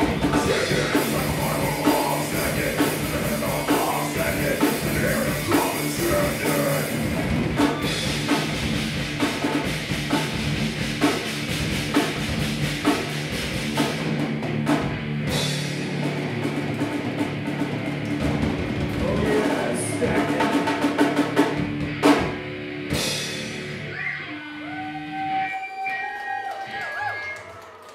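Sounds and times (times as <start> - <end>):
heavy metal band playing: 0.0 - 26.1.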